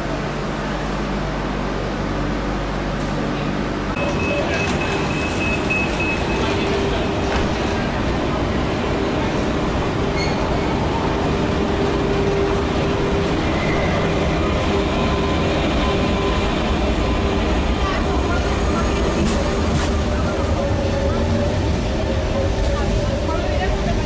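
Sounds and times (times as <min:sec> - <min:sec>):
electric train running: 0:03.9 - 0:24.0.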